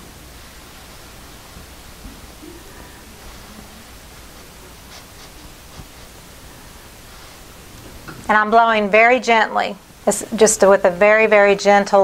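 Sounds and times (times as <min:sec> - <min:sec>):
breath blowing soft hiss: 0:00.0 - 0:08.4.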